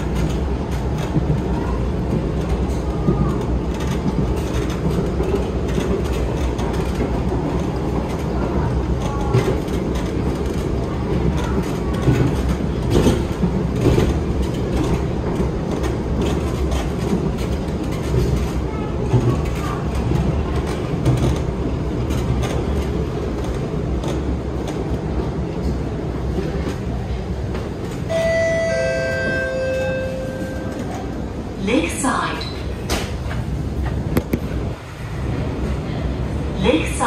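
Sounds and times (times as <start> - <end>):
wheels rumbling on rail: 0.0 - 37.0.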